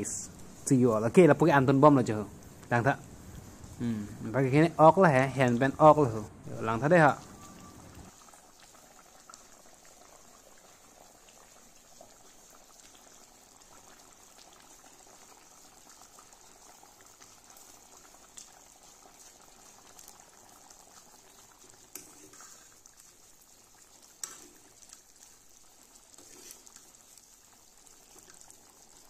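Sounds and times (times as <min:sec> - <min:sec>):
curry bubbling in a wok: 0:06.6 - 0:29.0.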